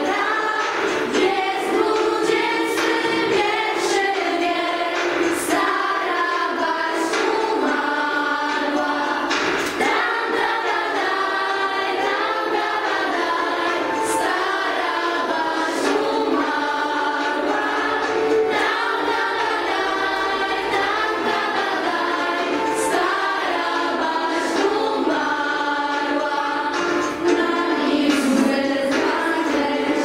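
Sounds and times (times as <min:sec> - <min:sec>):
girls and women singing together: 0:00.0 - 0:30.0.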